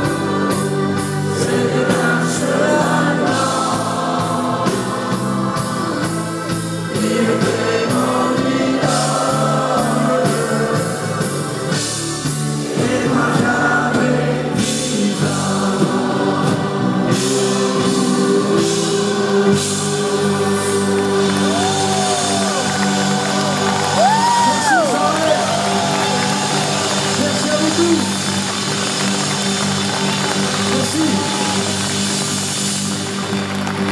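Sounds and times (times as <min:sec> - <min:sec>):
large choir singing: 0:00.0 - 0:26.8
electric guitar: 0:00.0 - 0:33.9.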